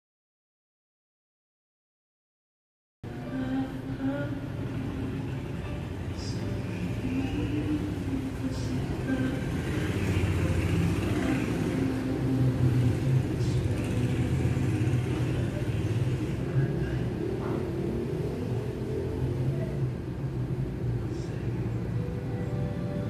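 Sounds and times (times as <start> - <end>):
faint higher background sounds: 3.1 - 23.0.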